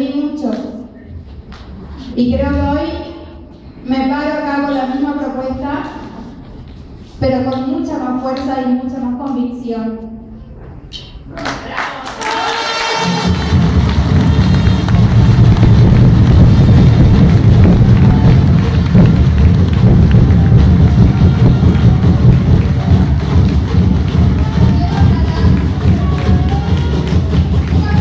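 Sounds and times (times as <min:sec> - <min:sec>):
audience applauding: 0:11.4 - 0:28.0
loud bass-heavy music: 0:12.8 - 0:28.0.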